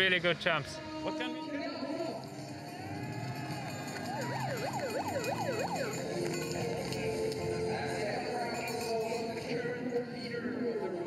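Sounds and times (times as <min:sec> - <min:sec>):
siren yelp wailing: 0:03.6 - 0:07.0.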